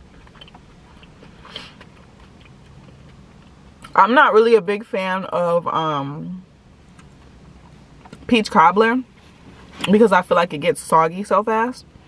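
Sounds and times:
soft chewing: 0.0s - 3.9s.

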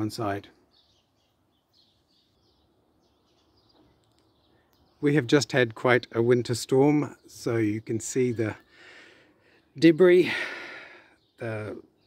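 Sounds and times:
faint bird chirps: 0.0s - 5.2s.

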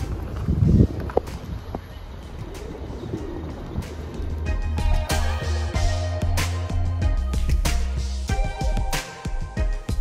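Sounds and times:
pigeons cooing: 1.9s - 5.8s
background music: 2.3s - 10.0s.

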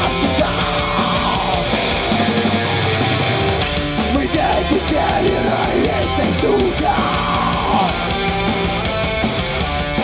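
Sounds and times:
heavy metal band playing: 0.0s - 10.0s.

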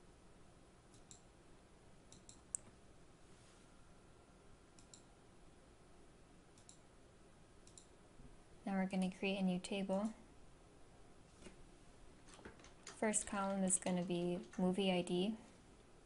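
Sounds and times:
faint computer mouse clicks: 0.9s - 1.3s, 2.1s - 2.8s, 4.8s - 5.1s, 6.6s - 6.8s, 7.6s - 7.9s.

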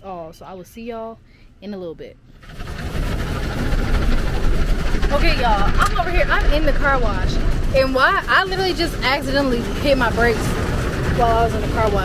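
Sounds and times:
car wash machinery rumbling: 2.3s - 12.0s
water spraying: 2.4s - 12.0s.

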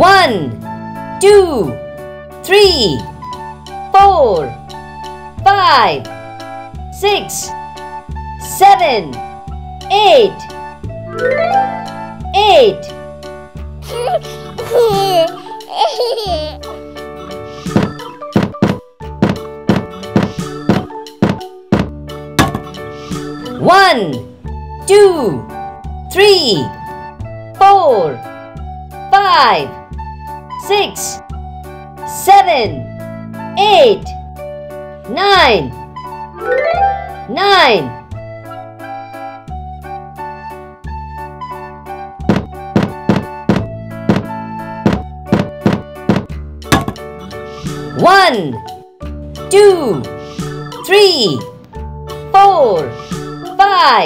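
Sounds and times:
children's background music: 0.0s - 54.0s
cartoon thunks of dominoes toppling: 21.3s - 22.8s.

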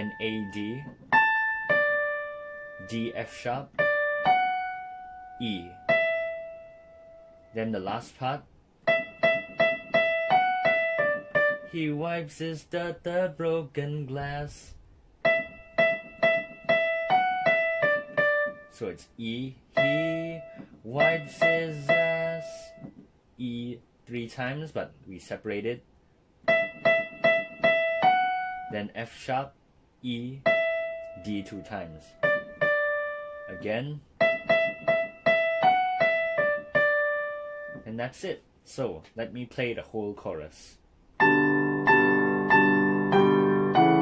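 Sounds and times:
digital piano single-note melody: 0.0s - 7.6s, 8.8s - 11.8s, 15.2s - 18.8s, 19.7s - 22.9s, 26.5s - 28.8s, 30.4s - 37.9s, 41.2s - 44.0s.

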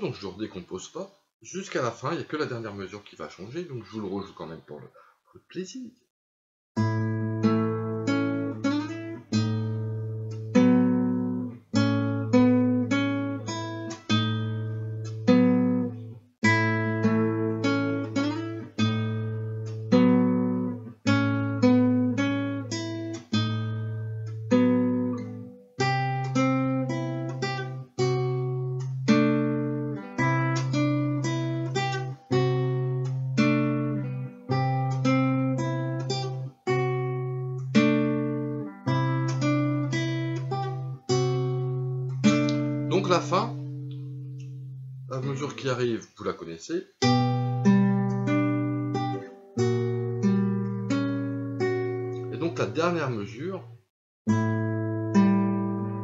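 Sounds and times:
classical guitar fingerstyle: 6.8s - 45.8s, 47.0s - 53.4s, 54.3s - 56.0s.

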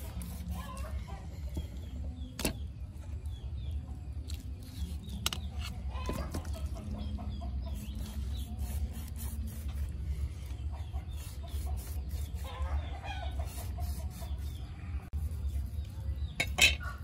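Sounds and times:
chickens clucking: 0.6s - 2.3s, 5.1s - 8.1s, 10.4s - 15.0s.

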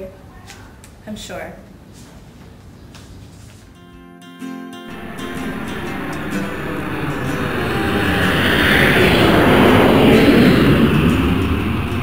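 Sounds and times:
jet airliner passing overhead: 4.9s - 12.0s.

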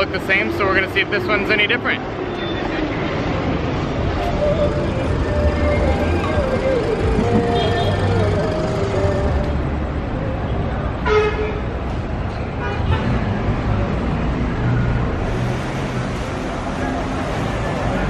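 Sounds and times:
street traffic engines: 0.0s - 18.0s
vehicle horn tooting: 7.3s - 8.4s, 11.0s - 11.6s.

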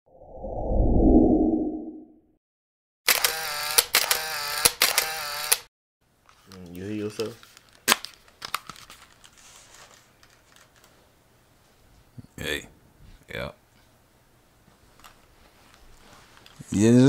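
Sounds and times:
low whoosh: 0.1s - 2.2s
sharp clicks: 3.1s - 5.7s.

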